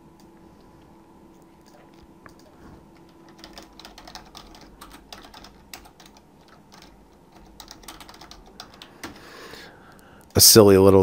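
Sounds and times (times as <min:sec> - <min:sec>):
faint keyboard typing: 0:00.1 - 0:10.4.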